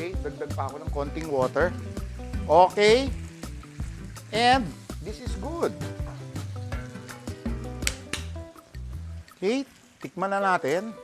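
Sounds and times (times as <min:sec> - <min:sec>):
background music with low notes: 0:00.0 - 0:11.0
sauce sizzling in a frying pan: 0:00.0 - 0:11.0.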